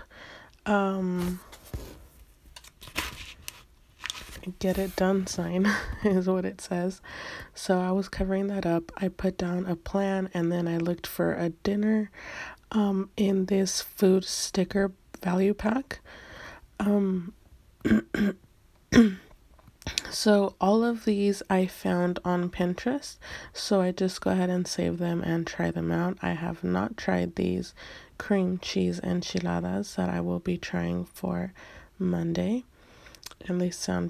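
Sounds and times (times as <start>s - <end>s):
paper rustling: 1.2s - 5.3s
woman clearing her throat: 17.8s - 19.3s.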